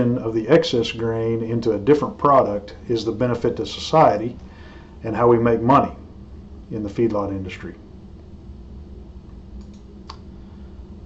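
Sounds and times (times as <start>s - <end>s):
low steady hum: 0.0s - 11.0s
small click: 9.2s - 10.3s
faint ticks: 9.3s - 10.2s.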